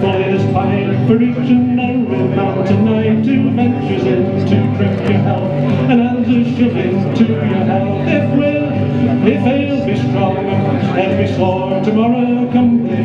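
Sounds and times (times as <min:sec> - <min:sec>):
acoustic guitar strummed: 0:00.0 - 0:13.0.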